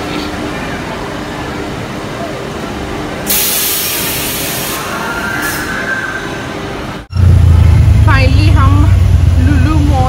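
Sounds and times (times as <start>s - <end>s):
auto-rickshaw engine drone: 4.8s - 10.0s
woman talking: 8.0s - 10.0s.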